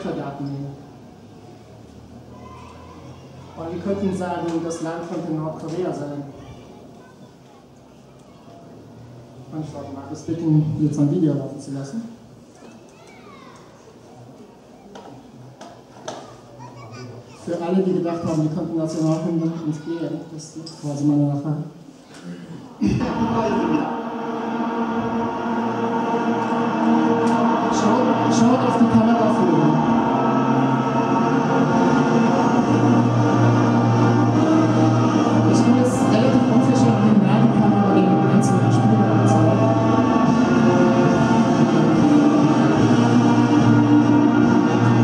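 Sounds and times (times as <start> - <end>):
faint indistinct voices: 0.0 - 24.8
orchestral anthem over loudspeakers: 22.8 - 45.0.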